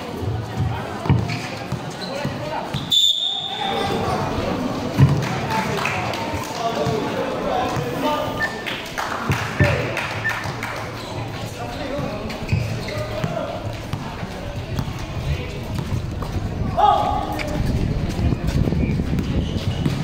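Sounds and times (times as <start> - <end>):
crowd chatter and shouts: 0.0 - 20.0
basketball bouncing on court: 0.2 - 2.9, 4.9 - 5.3, 9.3 - 20.0.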